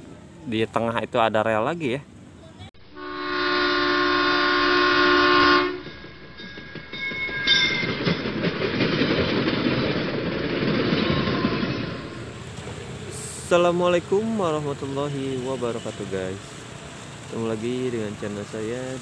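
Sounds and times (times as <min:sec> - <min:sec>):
train rumbling past: 0:00.0 - 0:19.0
multi-tone train horn: 0:03.0 - 0:05.9.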